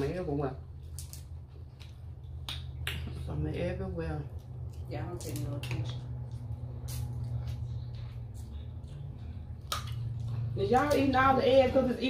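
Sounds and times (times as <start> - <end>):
steady low hum: 0.0 - 12.0
crab shells cracking: 0.9 - 1.3.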